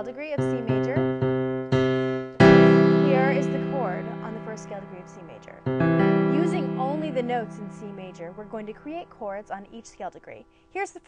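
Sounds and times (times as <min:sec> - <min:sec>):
piano single note: 0:00.0 - 0:09.1
piano chord ringing: 0:00.0 - 0:09.2.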